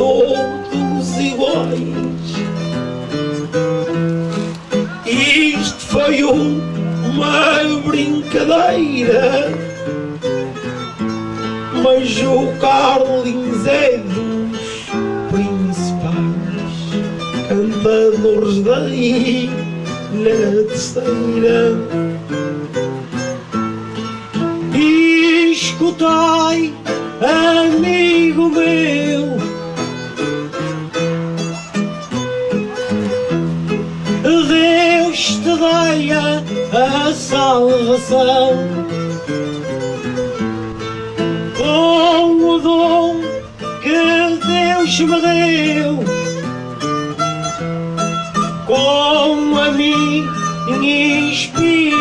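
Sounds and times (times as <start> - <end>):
plucked guitar melody: 0.0 - 52.0
strummed guitar bass: 0.0 - 52.0.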